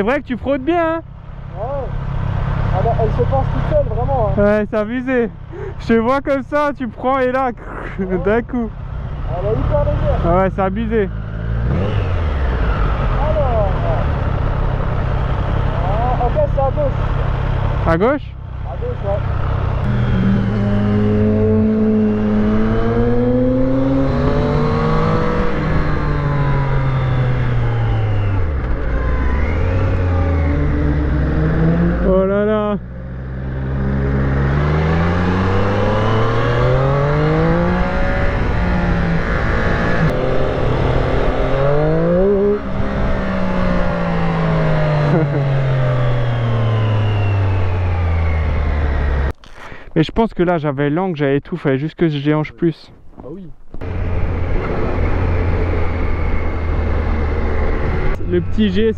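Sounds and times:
motorcycle engine revving: 0.0s - 49.8s, 52.9s - 58.9s.

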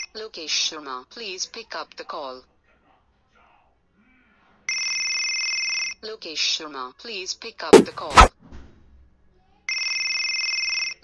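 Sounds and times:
electronic phone ringtone: 9.7s - 11.0s.

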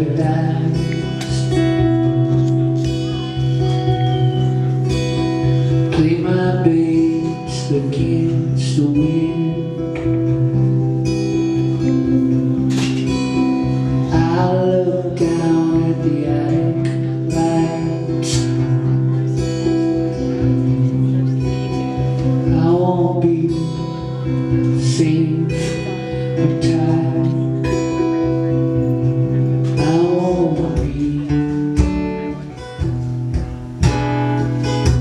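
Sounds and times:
strummed acoustic guitar: 0.0s - 35.0s.

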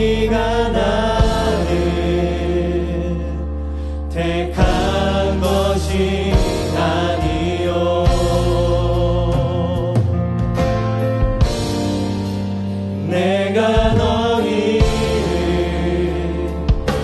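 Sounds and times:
singers in harmony: 0.0s - 10.3s, 12.9s - 17.0s
sustained bass and keyboard: 0.0s - 17.0s
drum hits: 1.2s - 1.9s, 13.8s - 15.8s, 16.6s - 17.0s.

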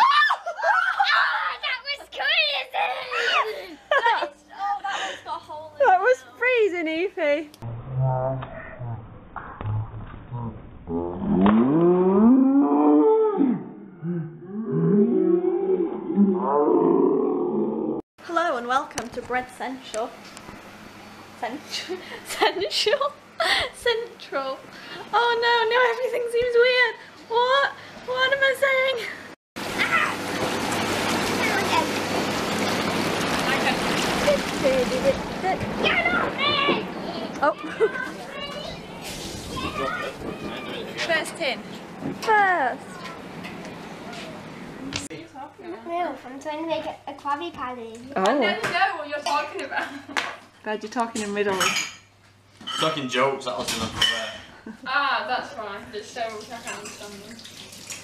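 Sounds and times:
child yelling: 0.0s - 3.6s, 29.8s - 30.2s, 35.8s - 38.9s, 39.5s - 41.0s
children calling and chattering: 0.0s - 6.4s, 34.2s - 47.6s.

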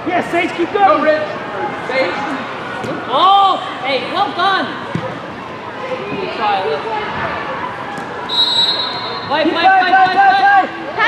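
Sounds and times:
high-pitched whistle tone: 8.3s - 9.3s.

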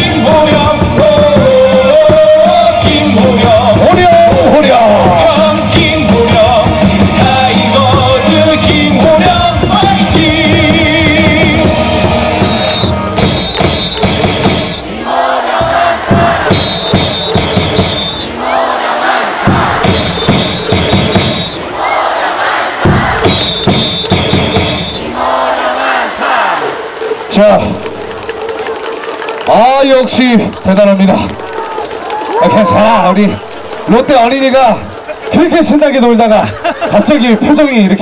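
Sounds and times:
amplified cheer song: 0.0s - 38.0s
crowd shouting a chant: 14.5s - 26.8s.

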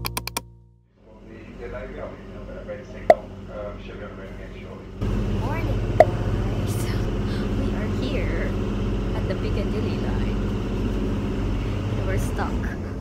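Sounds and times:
train carriage hum: 1.1s - 13.0s.

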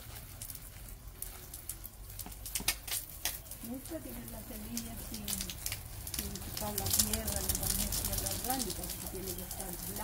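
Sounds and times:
water drops pattering on soil: 0.0s - 10.0s.

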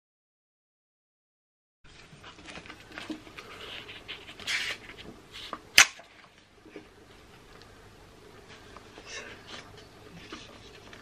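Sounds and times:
paper rustling: 1.9s - 5.7s.

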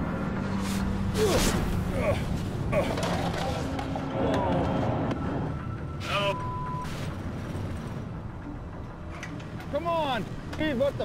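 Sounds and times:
short steady beep: 6.3s - 6.9s.

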